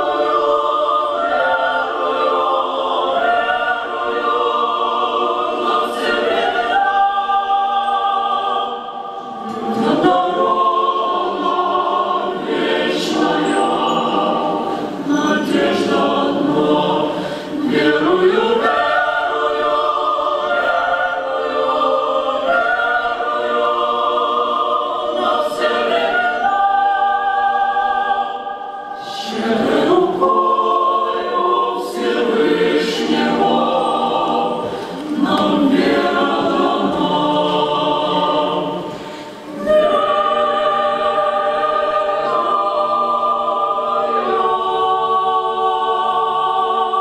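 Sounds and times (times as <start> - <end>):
mixed choir singing: 0.0 - 47.0.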